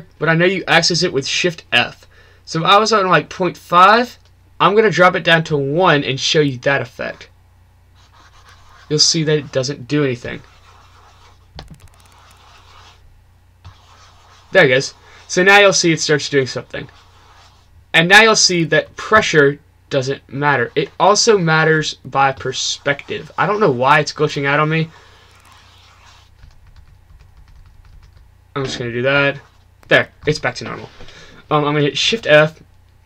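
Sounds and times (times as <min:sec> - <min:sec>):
low steady hum: 0:00.0 - 0:33.0
keyboard keys tapping: 0:11.6 - 0:12.7, 0:26.4 - 0:28.2.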